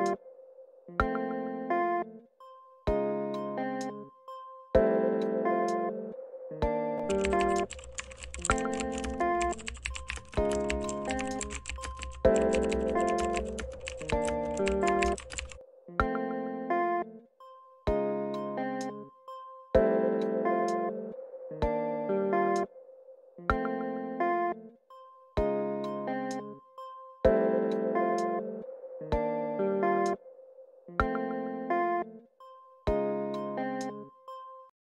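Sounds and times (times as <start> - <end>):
piano-like background music: 2.5 - 16.7, 17.5 - 22.7, 23.6 - 30.2
keyboard typing: 7.0 - 15.6.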